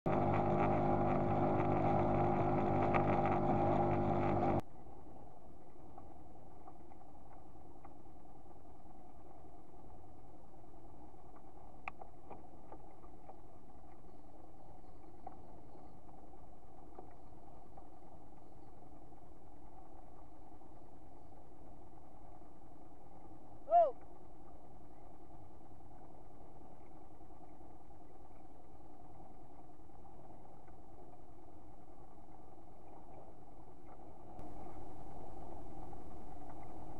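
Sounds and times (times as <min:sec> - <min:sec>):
outboard motor running: 0:00.1 - 0:05.0, 0:05.6 - 0:36.9
faint steady hum: 0:00.1 - 0:36.9
rushing water: 0:00.1 - 0:36.9.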